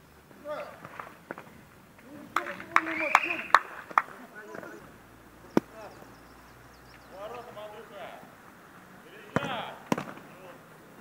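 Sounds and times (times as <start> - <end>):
players calling: 0.2 - 11.0.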